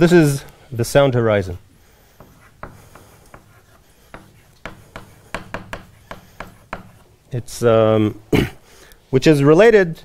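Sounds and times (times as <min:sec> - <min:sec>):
chalk tapping and scratching on blackboard: 0:01.9 - 0:07.3.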